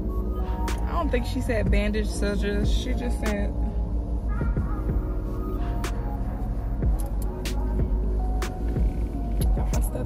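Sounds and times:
background music: 0:00.0 - 0:10.0
car cabin rumble: 0:00.0 - 0:10.0.

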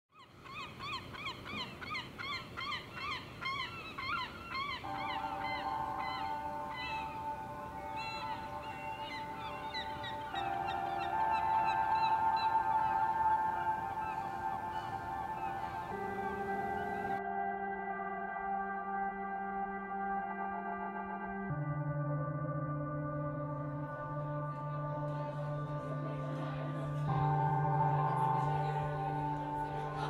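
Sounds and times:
flock of birds calling: 0:00.2 - 0:17.2
ambient music drone: 0:00.5 - 0:30.0.

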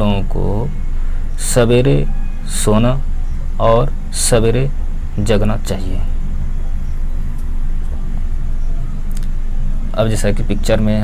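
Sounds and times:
low background rumble and hum: 0:00.0 - 0:11.0.

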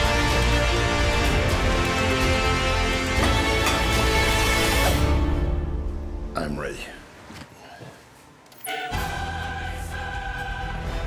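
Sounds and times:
orchestral music: 0:00.0 - 0:06.4
choir singing: 0:08.6 - 0:11.0.

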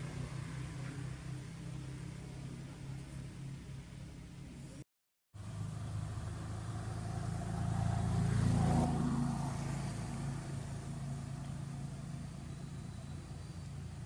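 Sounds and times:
motor vehicle engine hum: 0:00.0 - 0:04.8, 0:05.4 - 0:14.0.

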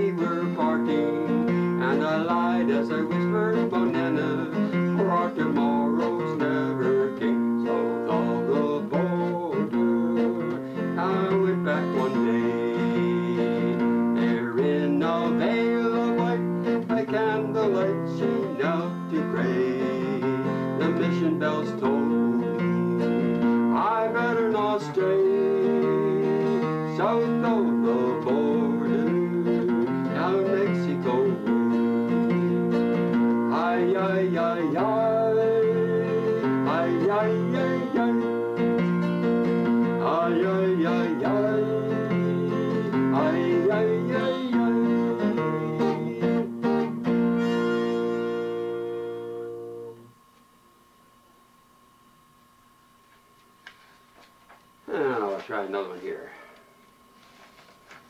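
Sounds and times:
man singing: 0:00.0 - 0:38.9, 0:39.8 - 0:46.9
acoustic guitar strumming: 0:00.0 - 0:50.3.

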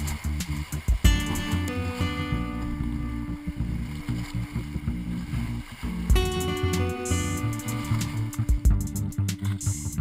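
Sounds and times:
rushing whitewater: 0:00.0 - 0:08.7.

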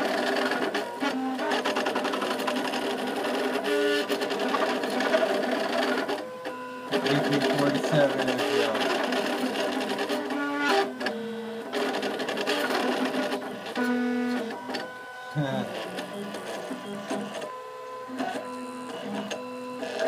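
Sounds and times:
stepper motors whining: 0:00.6 - 0:20.0.

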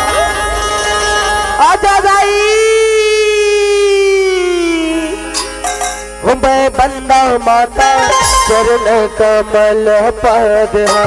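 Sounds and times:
person singing long note: 0:02.3 - 0:11.0.

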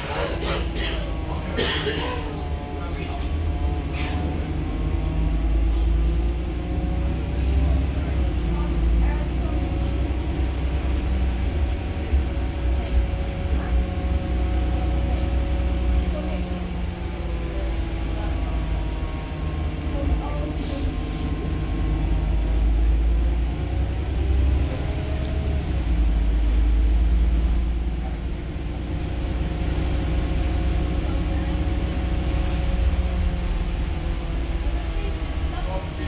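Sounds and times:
bus interior rumble: 0:00.0 - 0:36.0
engine and driveline whine: 0:00.0 - 0:36.0.

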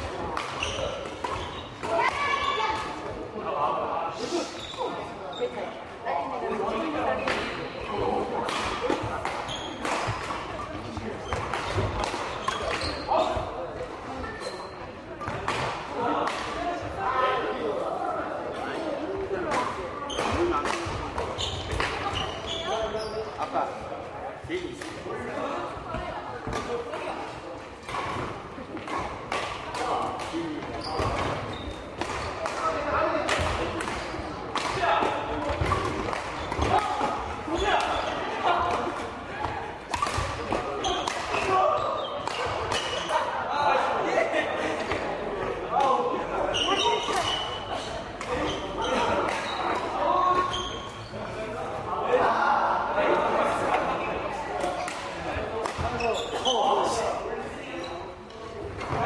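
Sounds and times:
indistinct chatter of players: 0:00.0 - 0:59.0
rackets striking shuttlecocks: 0:19.5 - 0:22.4, 0:27.8 - 0:38.0, 0:39.8 - 0:41.5, 0:42.2 - 0:43.2.

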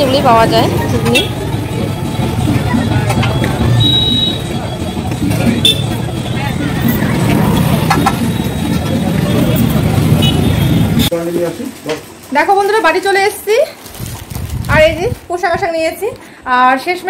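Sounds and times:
indistinct voices: 0:00.0 - 0:11.3
traffic rumble: 0:00.0 - 0:17.0.

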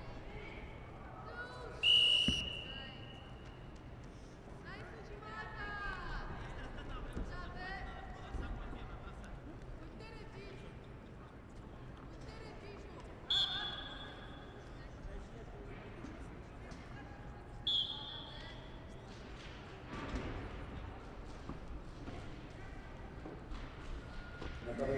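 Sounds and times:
murmur of voices: 0:00.0 - 0:24.9.

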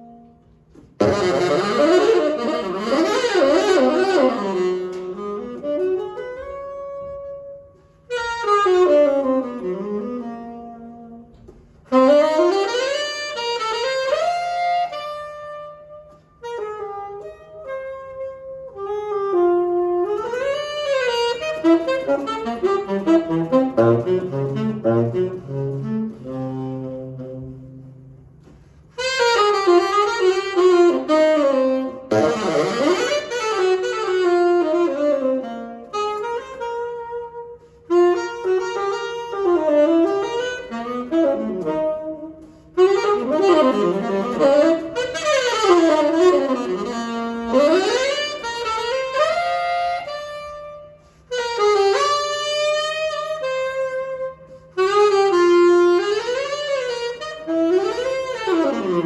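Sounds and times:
saxophone jazz solo: 0:00.0 - 0:59.0.

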